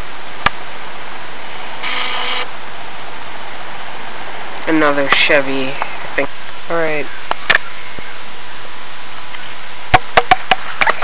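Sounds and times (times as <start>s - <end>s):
steady background hiss: 0.0s - 11.0s
faint pitched sound: 1.2s - 8.7s.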